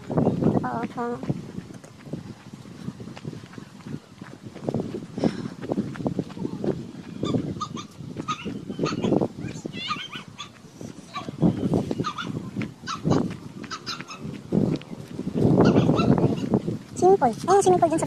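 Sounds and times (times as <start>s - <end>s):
footsteps on dirt path: 0.0s - 18.0s
bird chirping: 6.8s - 14.3s.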